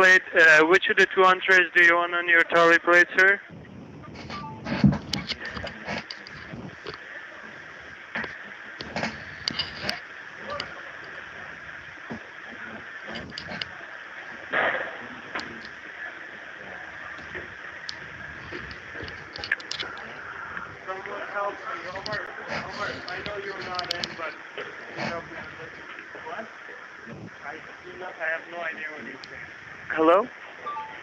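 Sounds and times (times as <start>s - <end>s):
crackles and clicks: 0.0s - 31.0s
telephone line hiss: 0.0s - 31.0s.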